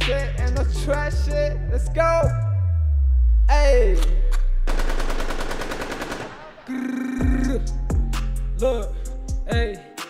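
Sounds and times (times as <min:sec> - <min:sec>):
deep bass: 0:00.0 - 0:04.7, 0:07.2 - 0:09.8
machine gun fire effect: 0:04.7 - 0:06.7.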